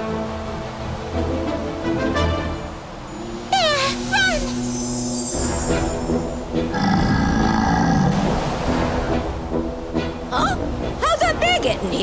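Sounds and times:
cartoon background music: 0.0s - 8.0s
animated bear growl: 6.6s - 8.3s.

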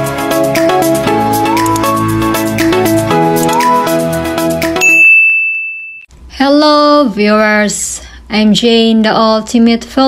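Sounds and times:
high bell ding: 4.8s - 6.1s.

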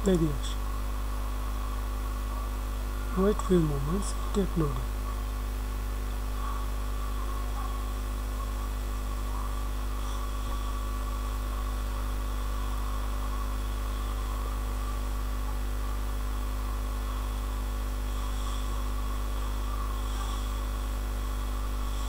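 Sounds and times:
low electrical hum: 0.0s - 22.0s.

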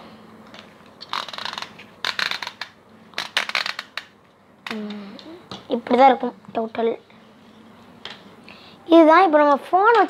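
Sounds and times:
tripod joints clicking: 1.0s - 4.1s.

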